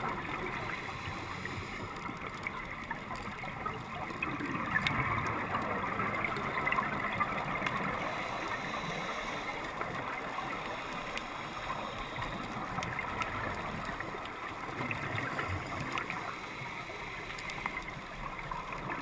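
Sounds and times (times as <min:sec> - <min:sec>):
gurgling bubbling water: 0:00.0 - 0:19.0.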